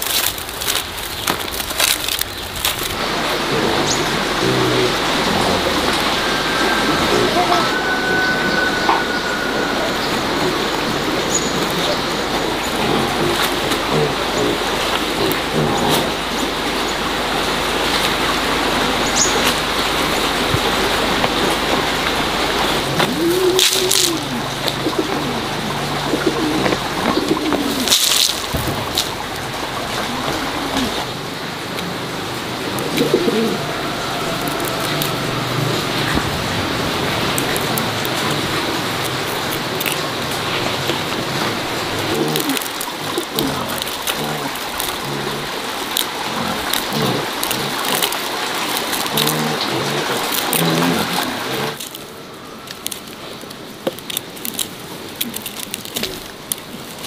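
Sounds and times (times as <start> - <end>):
doves cooing: 0.0 - 57.0
steady background hiss: 0.0 - 57.0.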